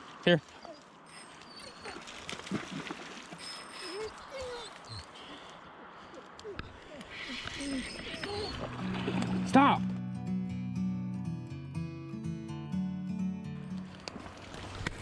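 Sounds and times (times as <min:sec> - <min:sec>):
dog whining: 0:00.6 - 0:02.2, 0:03.4 - 0:05.5, 0:06.4 - 0:09.0
river water rushing: 0:07.6 - 0:09.8, 0:13.9 - 0:15.0.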